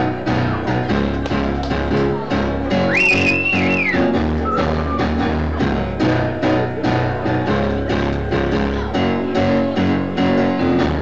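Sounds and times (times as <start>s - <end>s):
stage piano chords: 0.0s - 11.0s.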